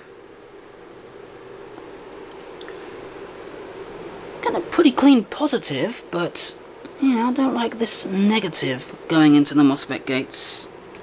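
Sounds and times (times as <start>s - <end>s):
low background hum: 0.0s - 11.0s.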